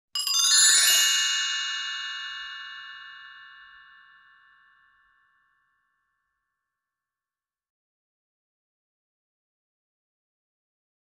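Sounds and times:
bright bell-like chime: 0.2 - 6.4.

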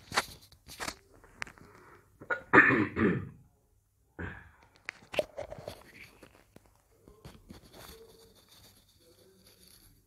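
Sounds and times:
man clearing his throat: 2.3 - 3.4
man coughing: 2.3 - 3.4.

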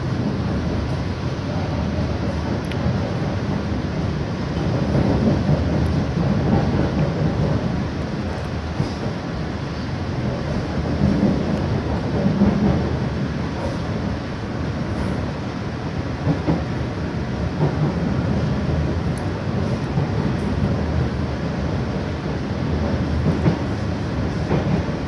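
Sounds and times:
train rumbling on rails: 0.0 - 25.0.

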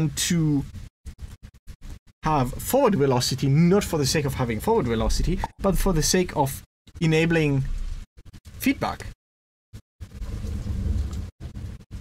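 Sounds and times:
low rumble of thunder: 10.0 - 12.0.

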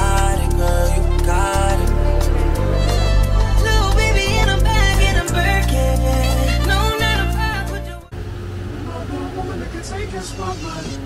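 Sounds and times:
road traffic rumble: 8.1 - 11.0
indistinct voices: 8.8 - 11.0.

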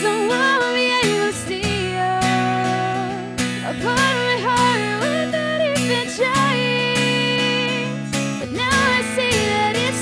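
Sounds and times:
acoustic guitar strumming: 0.0 - 10.0
young woman singing: 0.0 - 10.0.

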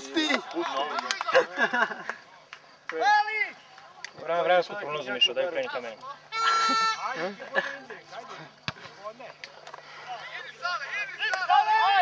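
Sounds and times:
men talking: 0.0 - 12.0
man shouting: 11.0 - 12.0.

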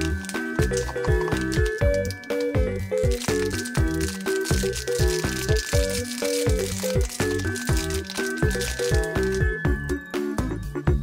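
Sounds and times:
foil wrapper crinkling: 0.0 - 9.6
upbeat background music: 0.0 - 11.0.

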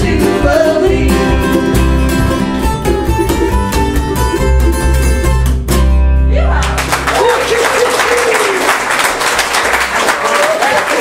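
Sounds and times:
person singing: 0.0 - 1.8
acoustic folk band playing: 0.0 - 7.6.

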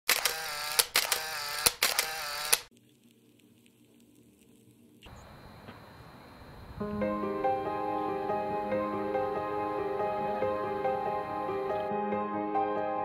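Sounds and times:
camera shutter whir and click: 0.1 - 2.7.

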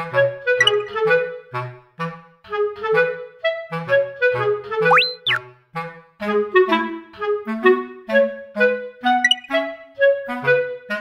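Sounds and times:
bouncy woodwind tune: 0.0 - 11.0
whistle-like glide: 0.6 - 1.0, 4.8 - 5.4, 9.1 - 9.7
bass line: 4.9 - 5.4.

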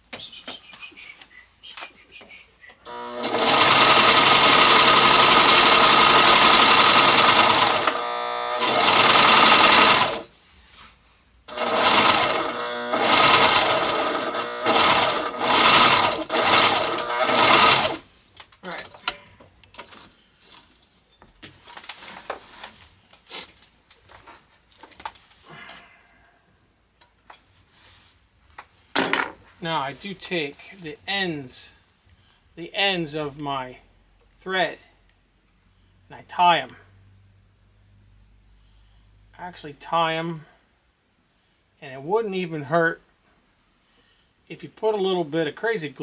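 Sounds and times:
sewing machine stitching: 2.9 - 10.3, 11.5 - 18.0.

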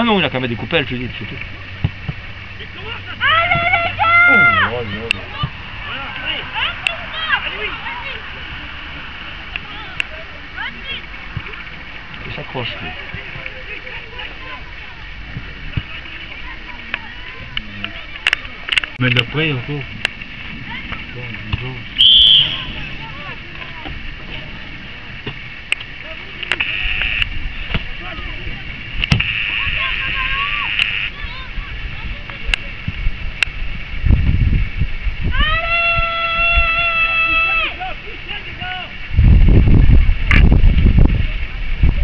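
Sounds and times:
wind rumble on microphone: 0.0 - 42.0
faint shouts: 2.9 - 8.3, 29.5 - 31.8, 35.3 - 39.0
person shouting long high call: 3.2 - 4.8
referee's whistle blast: 22.0 - 22.8.

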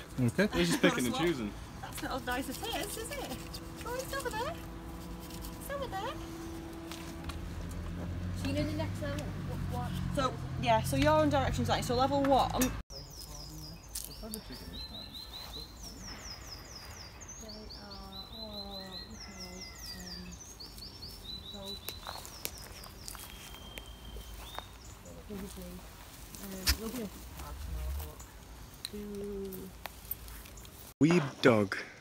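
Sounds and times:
songbird singing: 0.0 - 31.8.

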